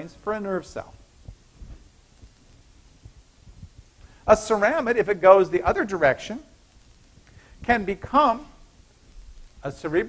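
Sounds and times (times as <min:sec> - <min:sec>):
faint low hum: 0:00.0 - 0:10.0
soft low thumps: 0:00.8 - 0:04.2.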